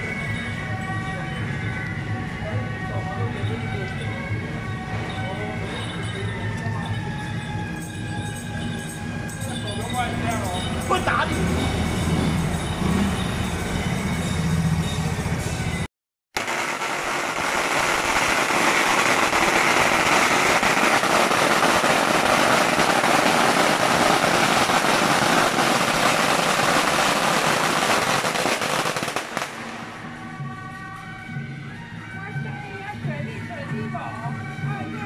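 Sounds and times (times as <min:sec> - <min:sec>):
firecrackers crackling: 0:08.0 - 0:13.2, 0:16.4 - 0:30.2.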